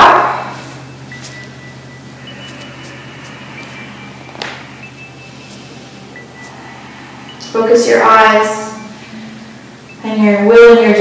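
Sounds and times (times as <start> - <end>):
faint thin high tones: 0.0 - 10.7
low hum: 0.0 - 11.0.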